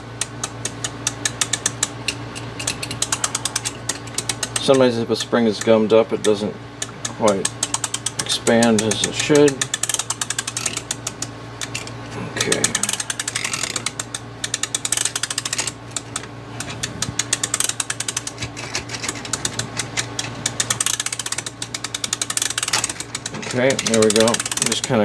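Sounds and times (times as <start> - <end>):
rapid ratchet clicking: 0.0 - 25.0.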